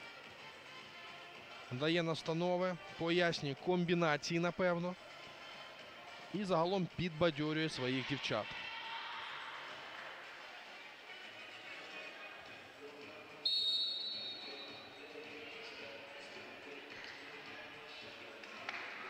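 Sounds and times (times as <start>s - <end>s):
sports hall ambience: 0.0s - 19.0s.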